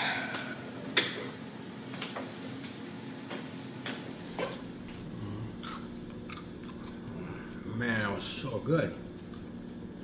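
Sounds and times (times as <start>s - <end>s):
steady low hum: 0.0s - 10.0s
person chewing food: 4.9s - 7.3s
wet mouth clicks: 5.6s - 7.0s.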